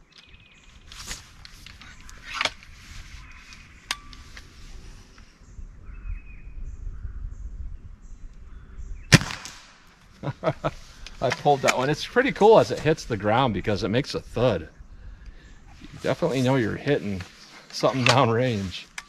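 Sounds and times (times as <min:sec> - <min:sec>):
air rifle shot: 0:09.1 - 0:10.0.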